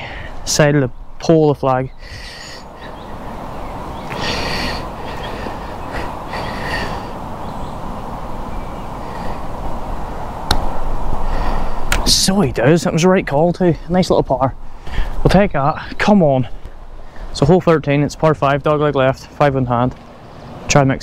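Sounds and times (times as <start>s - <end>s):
wind rushing over microphone: 0.0s - 18.9s
sharp click: 10.4s - 10.7s, 11.9s - 12.1s.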